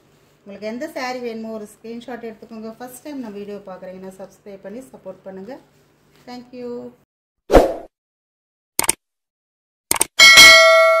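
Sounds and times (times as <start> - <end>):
quick double clicks: 8.8 - 9.0, 9.9 - 10.2
bell ding: 10.2 - 11.0.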